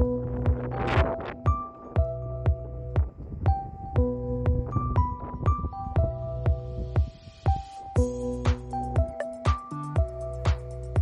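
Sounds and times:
low kick drum beat: 0.0 - 11.0
sustained keyboard notes: 0.0 - 11.0.

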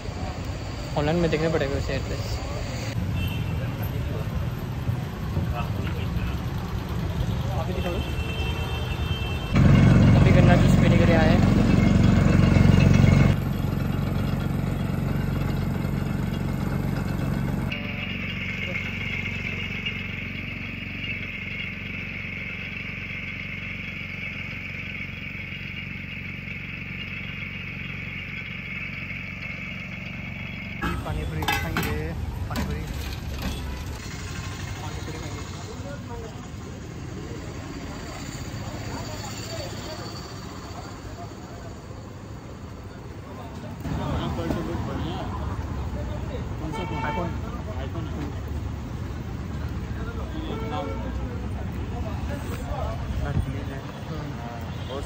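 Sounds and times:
vehicle engines running: 0.0 - 55.0
voices on street: 0.0 - 55.0.

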